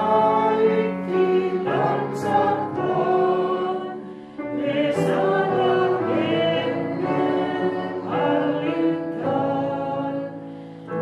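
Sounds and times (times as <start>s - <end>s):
choir singing sacred music: 0.0s - 10.8s.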